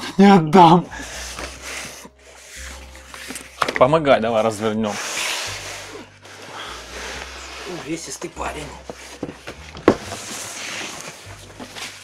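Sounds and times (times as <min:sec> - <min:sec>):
man talking: 0:07.7 - 0:08.9.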